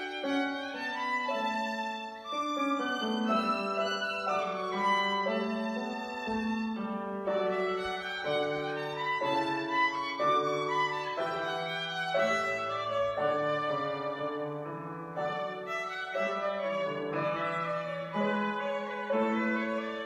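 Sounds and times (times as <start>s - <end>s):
grand piano accompaniment: 0.0s - 20.0s
violin melody: 0.0s - 20.0s.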